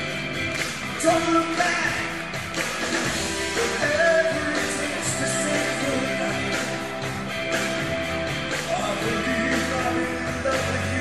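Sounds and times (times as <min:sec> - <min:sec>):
bass guitar: 0:00.0 - 0:11.0
drums: 0:00.0 - 0:11.0
electric guitars: 0:00.0 - 0:11.0.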